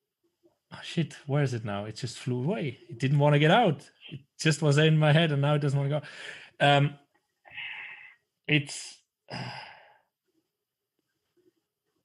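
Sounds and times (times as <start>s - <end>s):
man sighing breathily: 7.5s - 8.2s, 9.3s - 10.0s.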